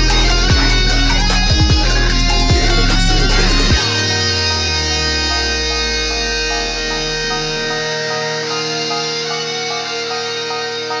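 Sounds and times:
deep bass note: 0.0 - 7.9
electric guitar melody: 0.0 - 11.0
held backing tones: 0.0 - 11.0.

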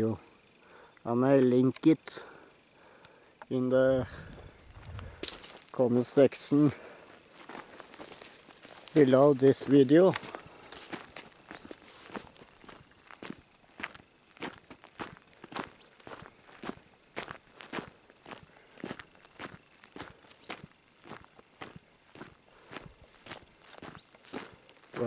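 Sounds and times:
footsteps on gravel: 4.1 - 25.0.

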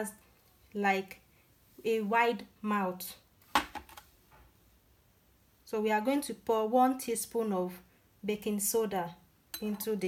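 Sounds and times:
kitchen items knocking on plastic tray: 3.5 - 4.0.

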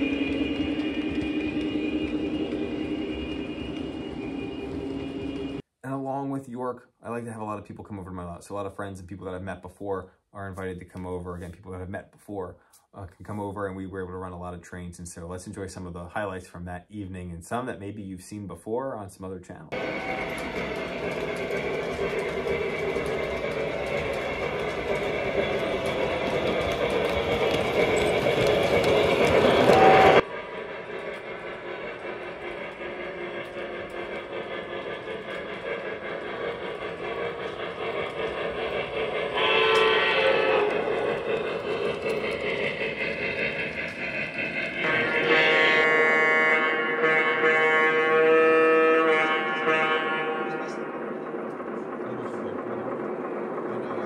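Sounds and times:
model train engine sounds: 0.0 - 5.6, 19.5 - 54.0
train horn blast: 39.4 - 40.9, 44.8 - 50.8.

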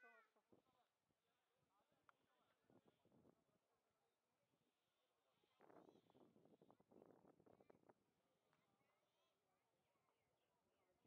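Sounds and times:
quiet chatter: 0.0 - 11.0.

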